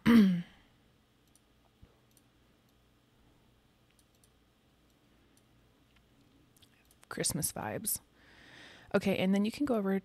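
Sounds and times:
faint mouse clicks: 1.2 - 2.8, 3.8 - 7.1.

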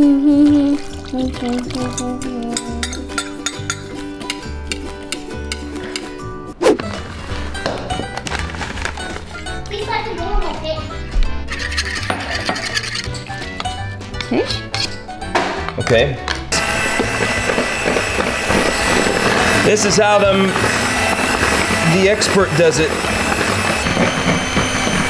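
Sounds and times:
background music: 0.0 - 25.0
whisk clinking against bowl: 1.9 - 4.4
electric hand mixer whirring: 16.5 - 25.0.

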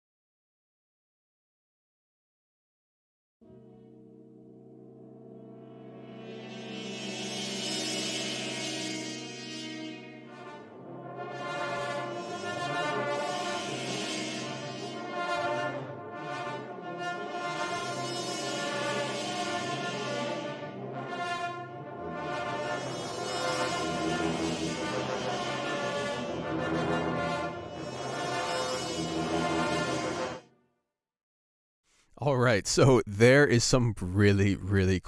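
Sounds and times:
orchestral brass chords: 8.2 - 30.5.

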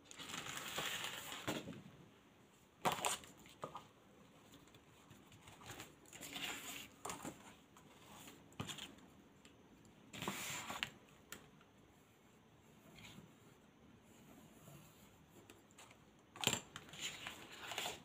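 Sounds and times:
paper rustling and sliding: 0.1 - 1.7, 16.8 - 18.0.

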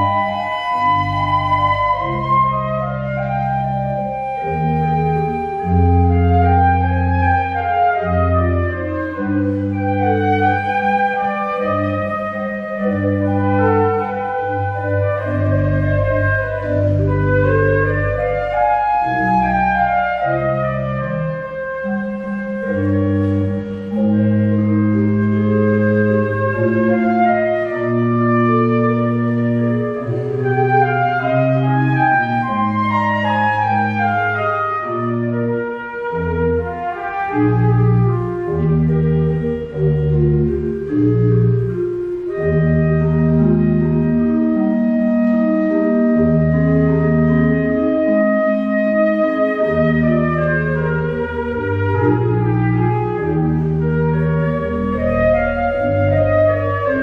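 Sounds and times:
flute melody: 0.0 - 57.0
pipe organ accompaniment: 0.0 - 57.0.

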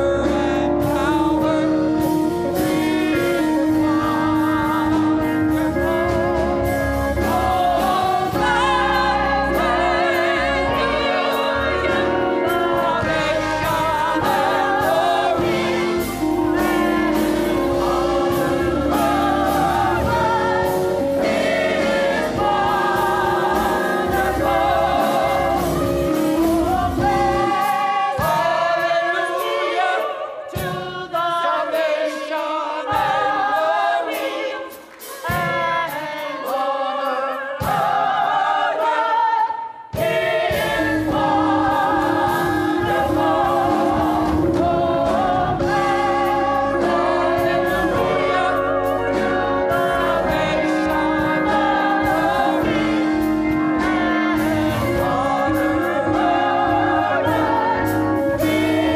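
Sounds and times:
low musical accompaniment: 0.0 - 29.6, 40.0 - 58.9
choir singing a hymn: 0.0 - 58.9.

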